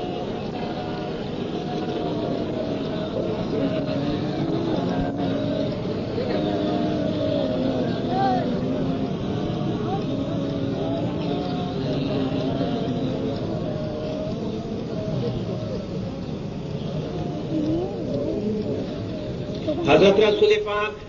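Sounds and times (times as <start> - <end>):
steady background noise: 0.0 - 21.0
voices wavering in pitch: 0.0 - 21.0.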